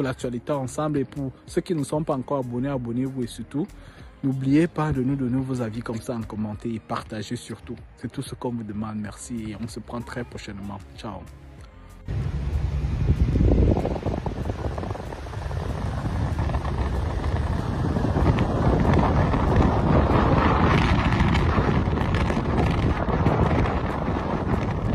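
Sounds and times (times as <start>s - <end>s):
road and traffic noise: 11.3s - 24.9s
wind rumbling over microphone: 12.1s - 24.9s.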